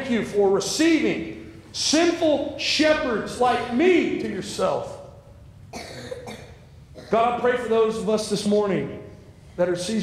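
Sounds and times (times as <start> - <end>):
person speaking: 0.0 - 5.3
person coughing: 5.7 - 7.4.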